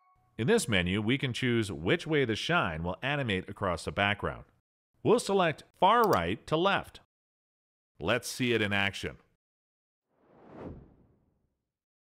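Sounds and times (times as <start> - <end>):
whoosh: 10.1 - 11.5.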